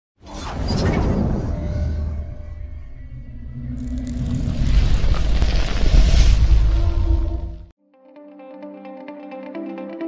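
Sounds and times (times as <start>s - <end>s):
low rumble: 1.1s - 7.7s.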